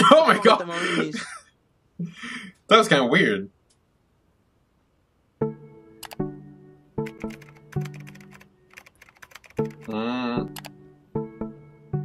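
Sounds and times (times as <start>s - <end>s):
slow piano music: 5.4s - 12.0s
computer keyboard typing: 7.0s - 10.8s.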